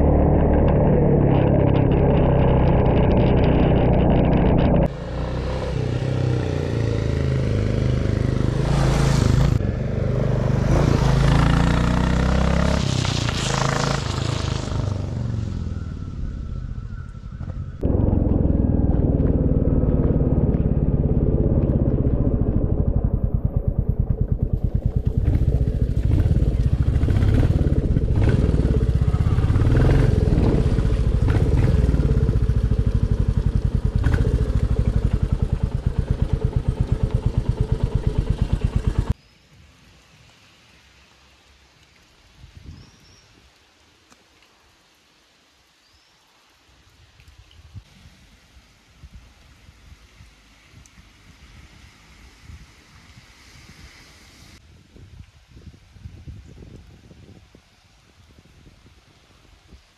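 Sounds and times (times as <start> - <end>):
motorcycle engine running: 0.0 - 12.1, 17.3 - 39.2
wind noise on microphone: 42.3 - 43.5, 47.2 - 59.9.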